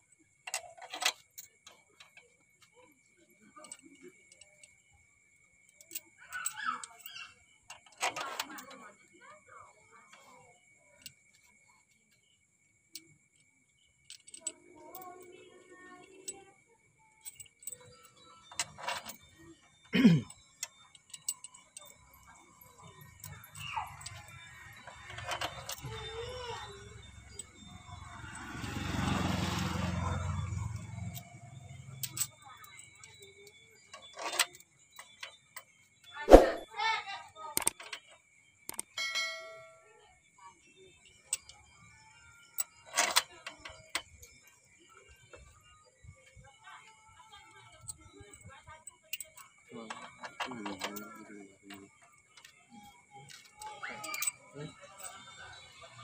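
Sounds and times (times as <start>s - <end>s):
metal engine parts clinking: 0.2s - 2.8s, 3.4s - 9.0s, 12.9s - 29.5s, 30.2s - 36.6s, 37.6s - 39.8s, 41.0s - 56.0s.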